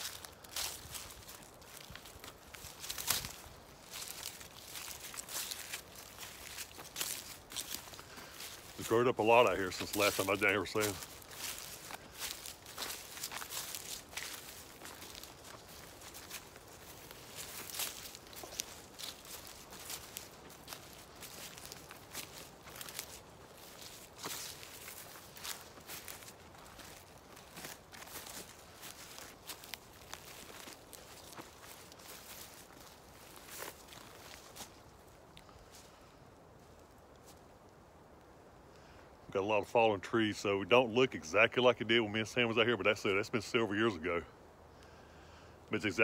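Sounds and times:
footsteps crunching through dry grass: 0:00.0 - 0:44.7, 0:45.6 - 0:46.0.

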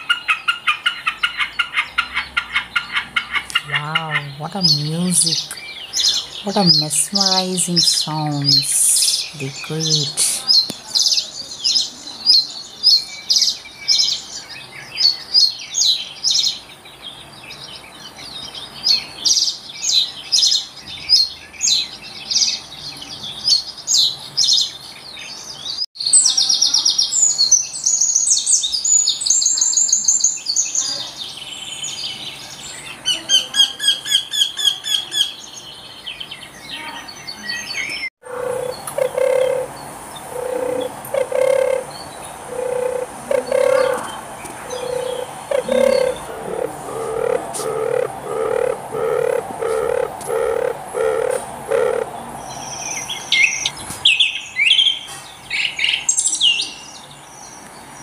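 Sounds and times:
bird high chirping phrases: 0:03.4 - 0:55.0
bird fast trilling song: 0:37.6 - 0:54.9
dove low purring notes: 0:38.2 - 0:52.2.

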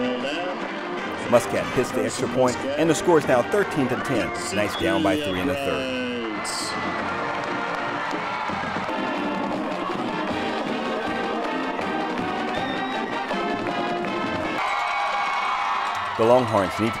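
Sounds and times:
brass band music: 0:00.0 - 0:14.6
crowd cheering: 0:00.0 - 0:17.0.

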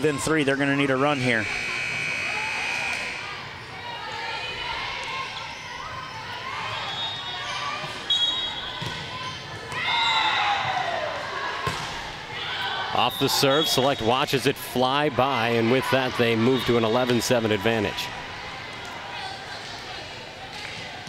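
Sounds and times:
players' voices and calls: 0:00.0 - 0:21.0.

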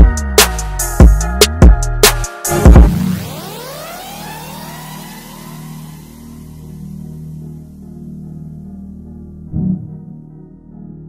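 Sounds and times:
synthetic tones sweeping upward: 0:02.5 - 0:06.7.

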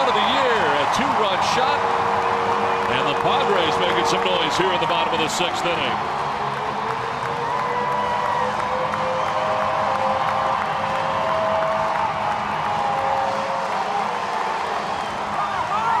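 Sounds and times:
crowd cheering and clapping: 0:00.0 - 0:16.0.

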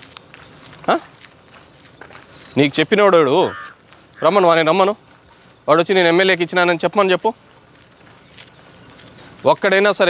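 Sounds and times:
footsteps on a dirt path: 0:00.0 - 0:10.0.

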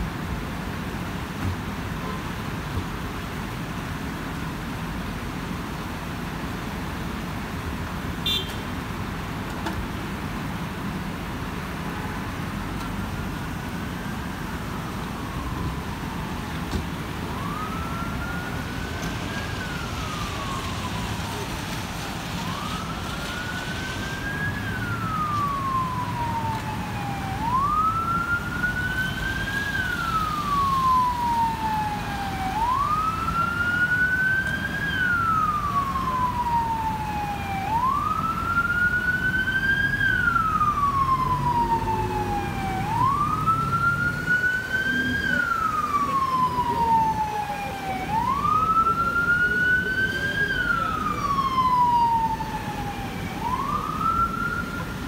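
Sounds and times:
wet street traffic rumble: 0:00.0 - 0:55.0
emergency vehicle siren wailing: 0:00.5 - 0:55.0.

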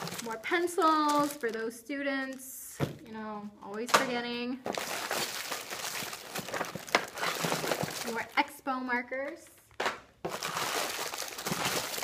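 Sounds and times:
plastic wrappers crinkling: 0:00.0 - 0:02.6, 0:03.7 - 0:08.5, 0:09.7 - 0:12.0
hands rummaging in cardboard box: 0:04.7 - 0:08.4, 0:10.3 - 0:12.0.

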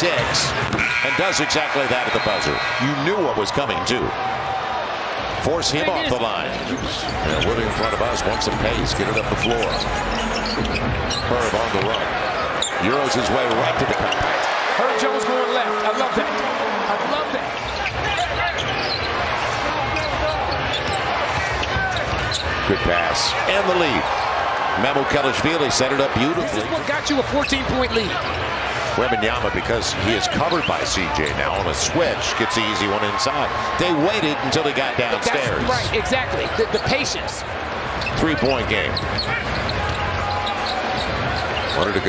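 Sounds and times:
crowd noise: 0:00.0 - 0:42.0
sneakers squeaking on court: 0:06.7 - 0:08.5, 0:09.1 - 0:13.0, 0:17.5 - 0:22.7, 0:30.4 - 0:30.9, 0:37.8 - 0:42.0.

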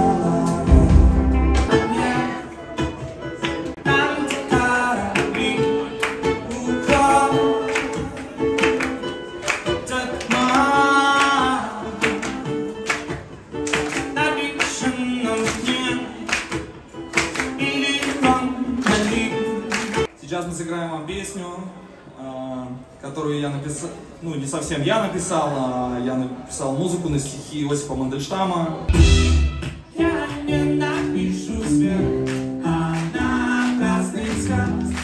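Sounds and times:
man singing: 0:00.0 - 0:02.7, 0:03.7 - 0:08.4, 0:09.7 - 0:12.8, 0:13.9 - 0:16.5, 0:17.2 - 0:20.1, 0:29.8 - 0:35.0
strummed guitars: 0:00.0 - 0:20.1, 0:28.9 - 0:35.0.

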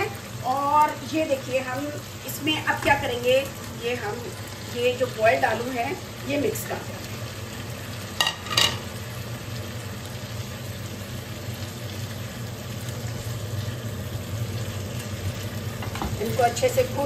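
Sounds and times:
spatula stirring sizzling food: 0:00.0 - 0:17.0.

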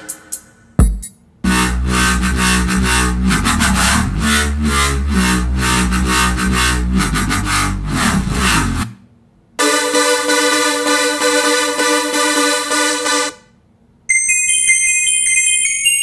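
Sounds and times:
synth bass line: 0:01.4 - 0:09.0, 0:09.6 - 0:13.4.

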